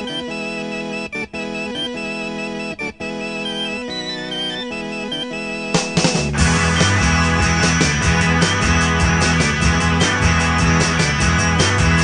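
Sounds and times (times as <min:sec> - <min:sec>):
electric organ chords: 0:00.0 - 0:12.0.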